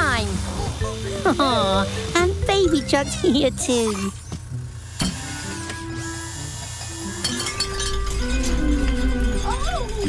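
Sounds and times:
soft cartoon music: 0:00.1 - 0:10.0.

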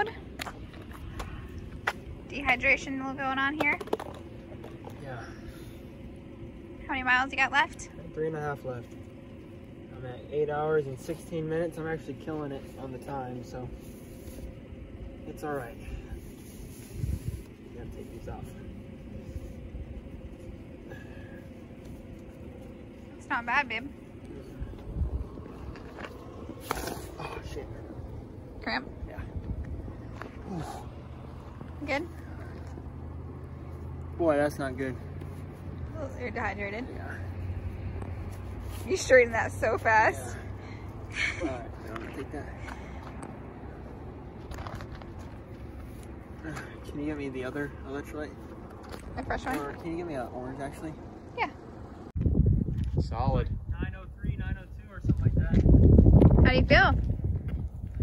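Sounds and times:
wind rumble on microphone: 0:13.9 - 0:21.2, 0:23.6 - 0:32.8, 0:52.0 - 0:58.0.

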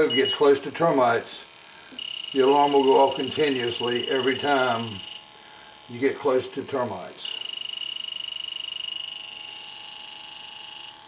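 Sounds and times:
high-pitched fluttering alarm tone: 0:00.0 - 0:00.7, 0:01.6 - 0:11.0.

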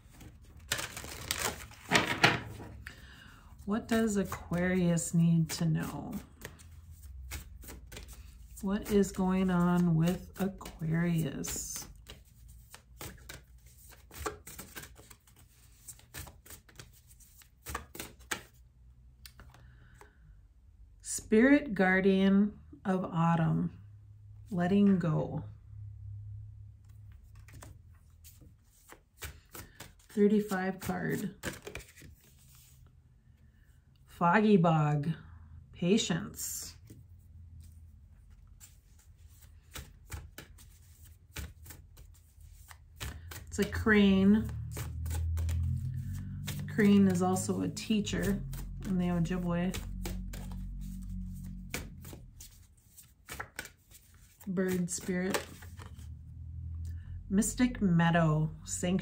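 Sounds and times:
cards being shuffled: 0:00.0 - 0:03.0, 0:03.8 - 0:18.6, 0:26.9 - 0:32.8, 0:36.8 - 0:56.2.

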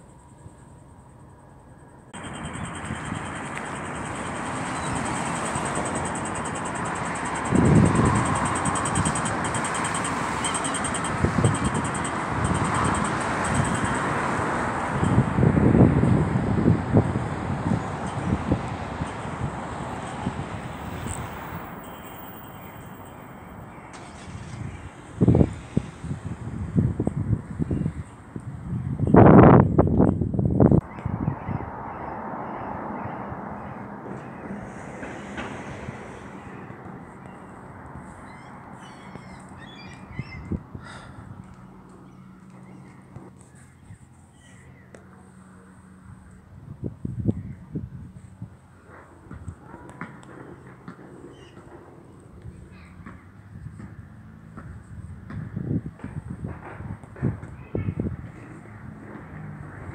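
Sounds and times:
car traffic: 0:00.0 - 0:59.9
steady background noise: 0:00.0 - 0:59.9
wind buffeting microphone: 0:02.1 - 0:44.2, 0:46.0 - 0:59.9
birds calling: 0:02.2 - 0:14.2, 0:30.8 - 0:45.0, 0:51.2 - 0:51.8.

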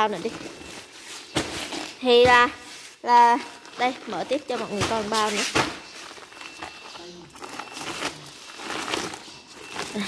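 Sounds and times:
plastic bag crinkling: 0:03.4 - 0:10.0.

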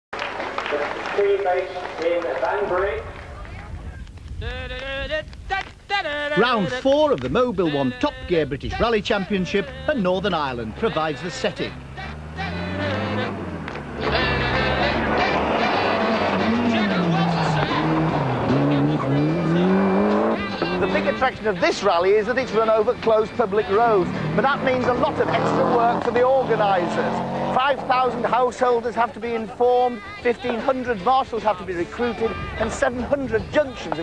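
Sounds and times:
voice: 0:00.6 - 0:04.0, 0:06.4 - 0:11.8, 0:18.8 - 0:34.0
rally car engine revving: 0:09.7 - 0:28.8.

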